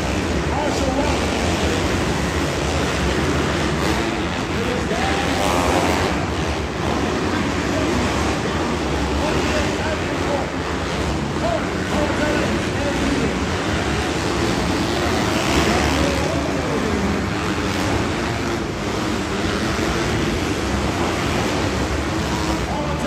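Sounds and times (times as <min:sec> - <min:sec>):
dirt bike engines racing: 0:00.0 - 0:23.0.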